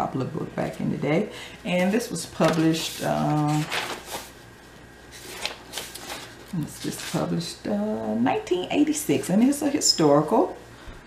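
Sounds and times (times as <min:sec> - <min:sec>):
book pages rustling: 0:01.9 - 0:04.4, 0:05.1 - 0:07.3.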